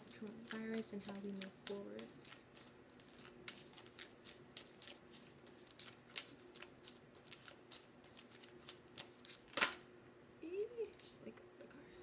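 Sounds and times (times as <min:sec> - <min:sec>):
cards being shuffled: 0:00.0 - 0:09.8.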